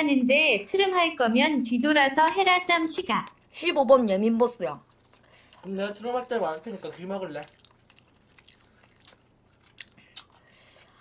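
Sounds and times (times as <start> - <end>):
person chewing food: 3.2 - 11.0.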